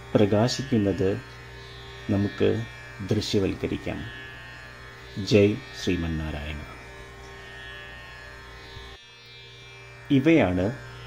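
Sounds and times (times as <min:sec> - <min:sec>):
instrumental drone of held tones: 0:00.0 - 0:11.0.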